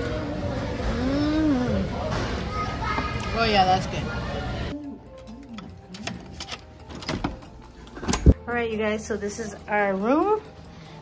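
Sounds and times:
restaurant chatter: 0:00.0 - 0:10.9.

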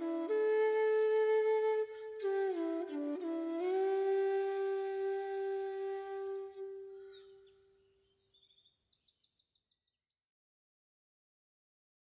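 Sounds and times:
flute music: 0:00.0 - 0:07.4.

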